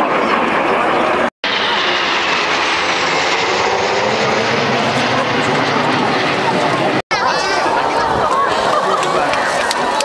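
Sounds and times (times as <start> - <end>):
jet engine whine: 0.0 - 10.0
jet engines roaring overhead: 0.0 - 10.0.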